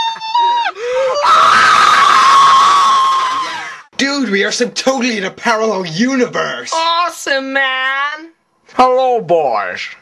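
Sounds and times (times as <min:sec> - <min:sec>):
young people screaming: 0:00.0 - 0:03.8.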